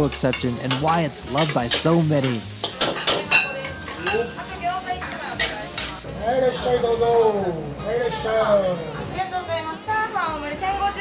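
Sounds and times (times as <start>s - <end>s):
rice sizzling in oil: 0.6s - 6.0s.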